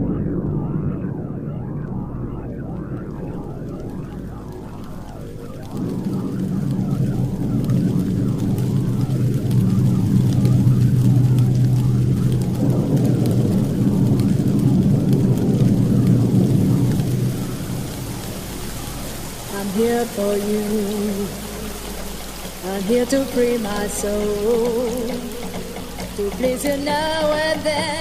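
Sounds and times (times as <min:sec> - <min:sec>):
low synth chords: 0:00.0 - 0:28.0
rain and thunder effect: 0:00.0 - 0:28.0.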